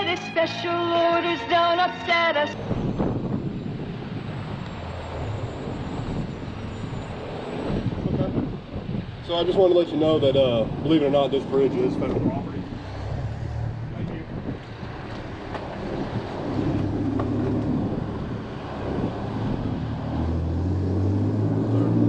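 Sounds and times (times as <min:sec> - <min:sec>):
heavy engine drone: 0:00.0 - 0:22.0
road traffic rumble: 0:00.0 - 0:22.0
wind on microphone: 0:02.6 - 0:22.0.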